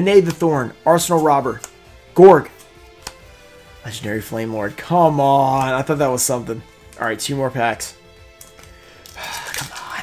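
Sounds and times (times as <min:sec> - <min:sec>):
quiet background music: 0:00.0 - 0:10.0
foil wrapper crinkling: 0:09.0 - 0:10.0.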